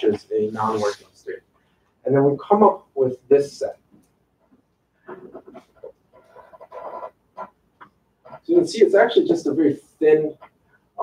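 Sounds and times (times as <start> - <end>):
man speaking quietly: 0.0 - 1.4.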